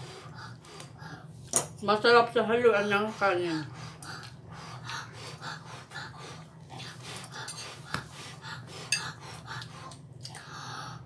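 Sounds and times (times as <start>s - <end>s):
breathing through the nose: 0.0s - 1.3s, 3.6s - 11.0s
steady low hum: 0.0s - 11.0s
person chewing noodles: 3.9s - 10.7s.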